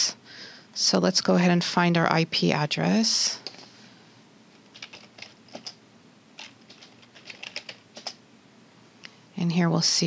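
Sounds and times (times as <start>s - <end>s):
computer keyboard typing: 4.7s - 5.8s, 6.4s - 8.2s.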